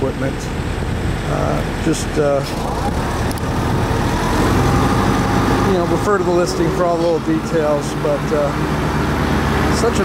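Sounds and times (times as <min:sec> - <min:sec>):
mower engine running: 0:01.5 - 0:10.0.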